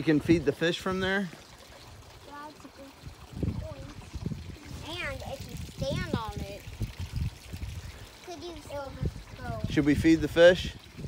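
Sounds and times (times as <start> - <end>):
water trickling in pond: 0.0 - 11.0.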